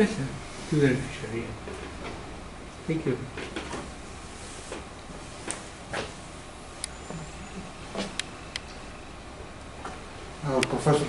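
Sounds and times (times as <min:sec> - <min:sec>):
faint low murmur: 0:00.0 - 0:11.0
room noise: 0:00.0 - 0:11.0.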